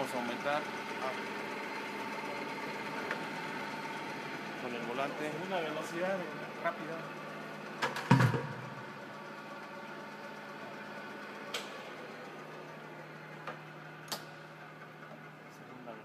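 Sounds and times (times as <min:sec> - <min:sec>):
milling machine humming: 0:00.0 - 0:16.0
loud mechanical clunk: 0:07.8 - 0:09.0.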